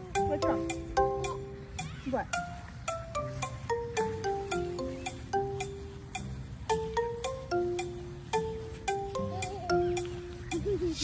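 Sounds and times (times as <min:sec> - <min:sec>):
bell-like background music: 0:00.0 - 0:11.0.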